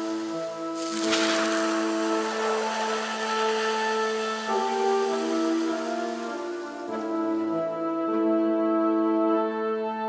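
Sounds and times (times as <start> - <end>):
burst of hiss: 0.0 - 7.8
slow music of held chords: 0.0 - 10.0.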